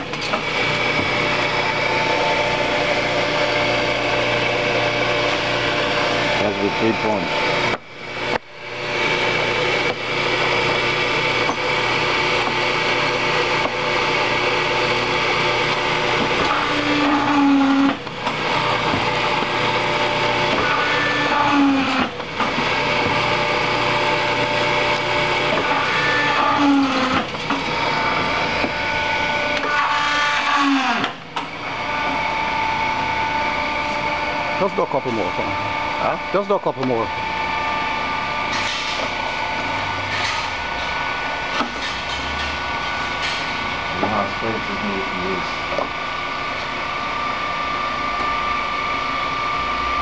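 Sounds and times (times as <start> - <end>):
paper drill motor whirring: 0.0 - 41.7.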